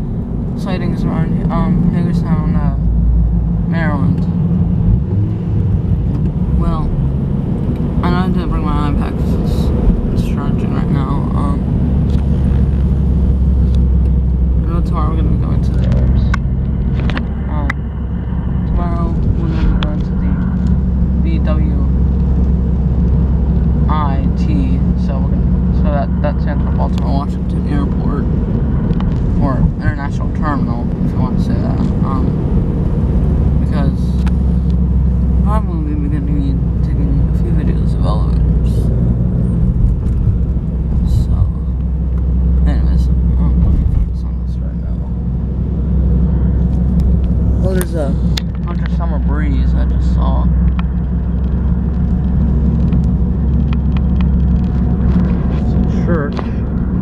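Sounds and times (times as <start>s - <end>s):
car engine and road rumble: 0.0s - 57.0s
person speaking indistinctly: 0.6s - 2.9s, 3.6s - 5.4s, 6.5s - 7.0s, 8.0s - 11.8s, 14.5s - 16.4s, 17.0s - 17.8s, 18.6s - 22.1s, 23.8s - 28.3s, 29.2s - 32.5s, 33.6s - 34.3s, 35.4s - 39.0s, 40.9s - 41.9s, 42.6s - 45.2s, 47.5s - 50.6s, 55.1s - 56.7s.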